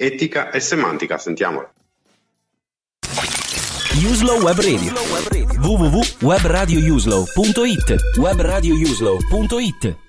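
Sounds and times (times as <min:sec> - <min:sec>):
loud noisy sound effect: 0:03.0 - 0:05.6
radio station jingle: 0:03.0 - 0:10.0.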